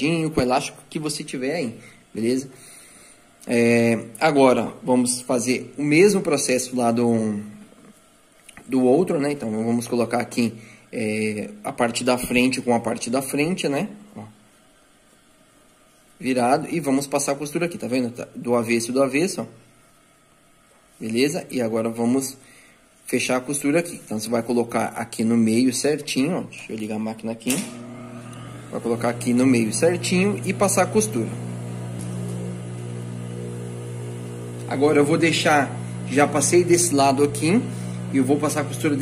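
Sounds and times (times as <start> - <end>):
faint room hiss: 0.0 - 29.1
sewing machine motor humming: 27.6 - 39.0
person speaking word: 34.6 - 39.0.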